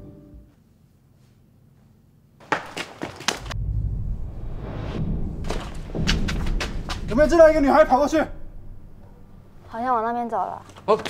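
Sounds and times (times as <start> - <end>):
low rumble: 3.4 - 10.7
sharp knocks and thuds: 4.6 - 9.6.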